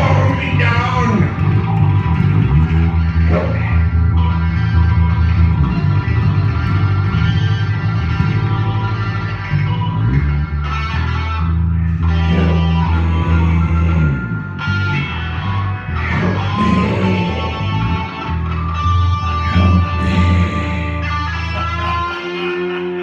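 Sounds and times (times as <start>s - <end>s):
instrumental rock music: 0.0s - 23.0s.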